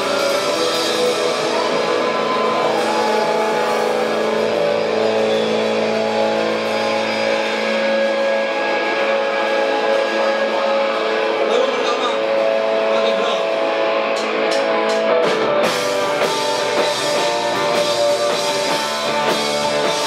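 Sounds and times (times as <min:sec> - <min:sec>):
electric guitar sustained chords: 0:00.0 - 0:20.0
keyboard sustained chords: 0:00.0 - 0:20.0.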